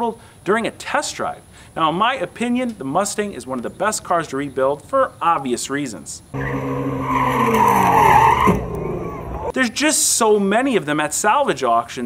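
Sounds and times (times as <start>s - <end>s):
car engine revving: 6.4s - 9.5s
tyres squealing: 6.4s - 9.5s.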